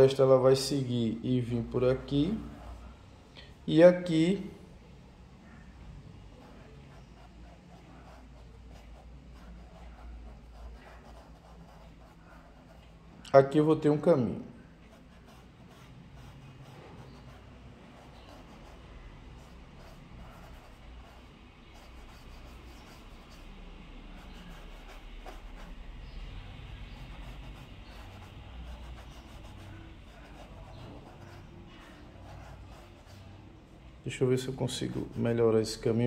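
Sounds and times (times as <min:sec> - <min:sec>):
low room hum: 0:00.0 - 0:36.0
paintbrush scratching on canvas: 0:06.4 - 0:13.0, 0:14.9 - 0:33.6, 0:34.5 - 0:35.9.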